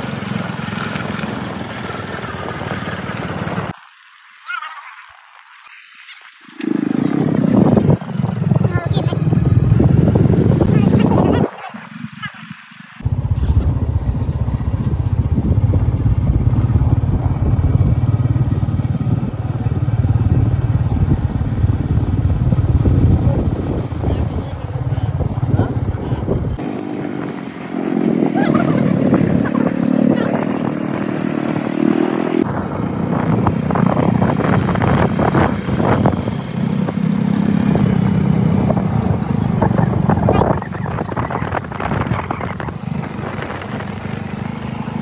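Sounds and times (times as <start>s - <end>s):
motorcycle engine running: 0.0s - 3.7s, 6.6s - 45.0s
wind rushing over microphone: 0.0s - 3.8s, 6.5s - 45.0s
voices: 4.4s - 7.9s, 8.5s - 9.4s, 10.6s - 14.4s, 23.0s - 26.7s, 28.0s - 31.6s.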